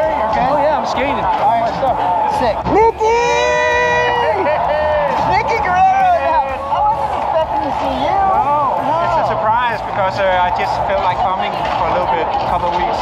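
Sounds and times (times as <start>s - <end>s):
crowd chatter: 0.0s - 13.0s
people greeting and exclaiming: 0.0s - 13.0s.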